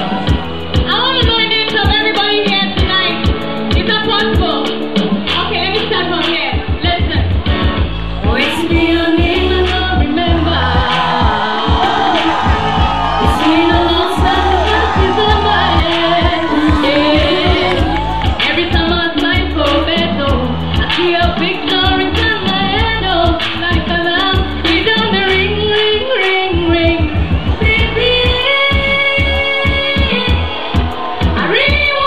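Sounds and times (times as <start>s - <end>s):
amplified music with heavy bass: 0.0s - 32.0s
woman singing into microphone: 0.0s - 32.0s.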